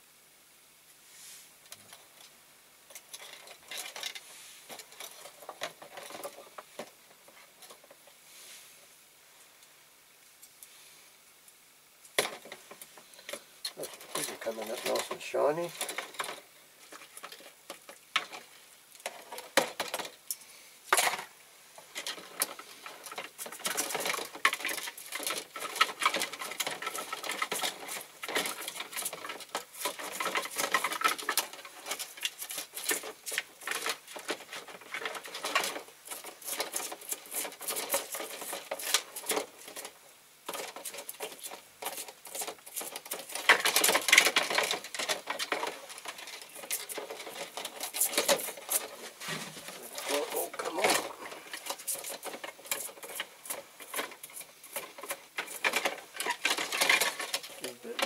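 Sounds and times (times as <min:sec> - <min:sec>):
scrubbing and scraping: 0:13.7 - 0:20.1, 0:21.8 - 0:58.0.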